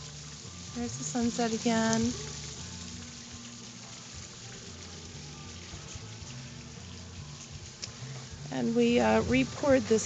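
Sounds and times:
running water hiss: 0.0 - 10.0.

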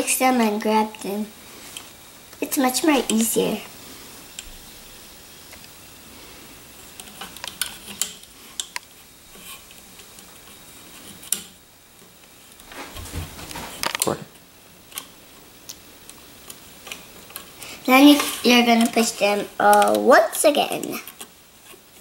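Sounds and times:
rubber bands clicking on loom: 18.2 - 20.1.

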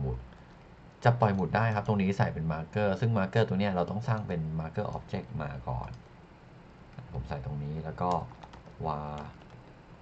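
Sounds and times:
person speaking: 1.0 - 6.2, 6.8 - 9.6
keyboard keystroke clicks: 8.0 - 9.8.

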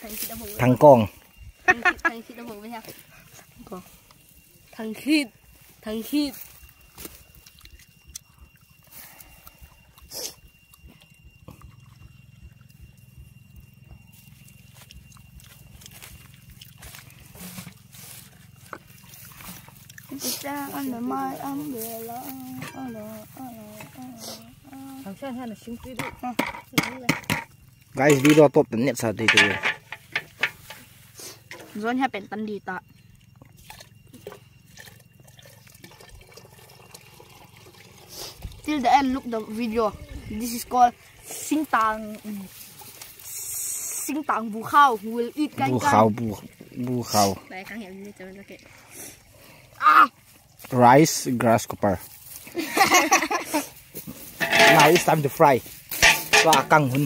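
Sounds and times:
steady low hum: 0.0 - 46.7
faint high tone: 4.6 - 7.2, 20.1 - 27.1
low steady rumble: 5.3 - 22.3
hands rustling dry grass: 15.8 - 25.2, 52.0 - 57.0.

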